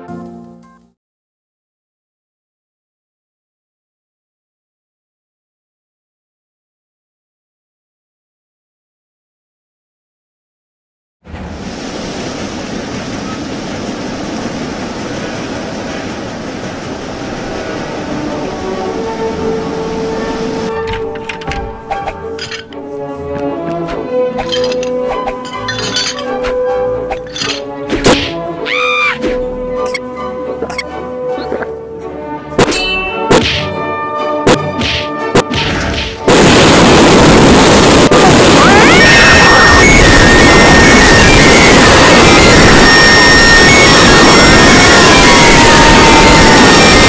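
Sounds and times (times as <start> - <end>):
background music of held notes: 0.0 - 0.9, 18.3 - 35.5
cartoon clanging impacts: 24.4 - 26.4, 27.2 - 28.4.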